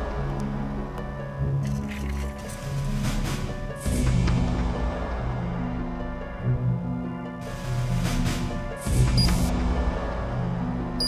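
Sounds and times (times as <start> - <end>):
tense film score: 0.0 - 11.0.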